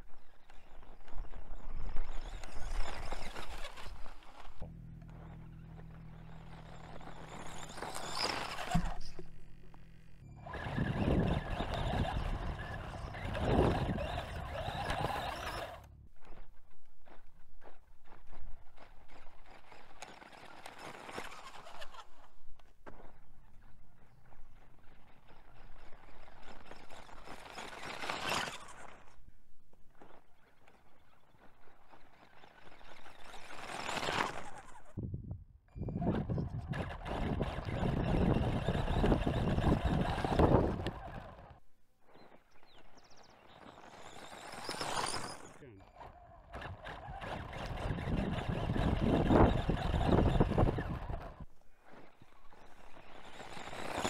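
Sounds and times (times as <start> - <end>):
rc car motor whining: 0.0 - 29.3, 29.9 - 35.0, 35.7 - 41.6, 42.2 - 54.0
tyres spinning on gravel: 0.1 - 29.3, 30.0 - 35.0, 35.8 - 41.6, 42.2 - 54.0.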